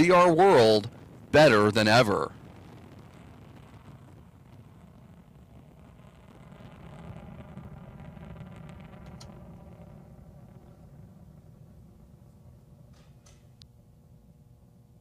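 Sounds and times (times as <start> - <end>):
rocket engine rumble with crackle: 0.0 - 15.0.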